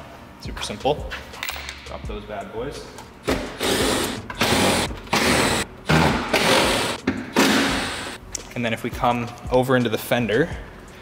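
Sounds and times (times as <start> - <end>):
cordless impact driver running: 3.6 - 5.6, 6.2 - 8.2.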